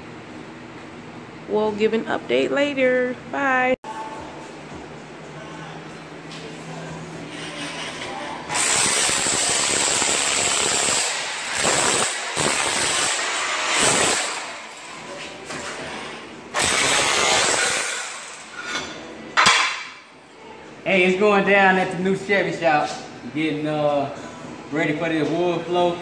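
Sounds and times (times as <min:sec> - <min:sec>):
power tool chipping tile: 0:08.5 - 0:14.8, 0:16.6 - 0:18.5.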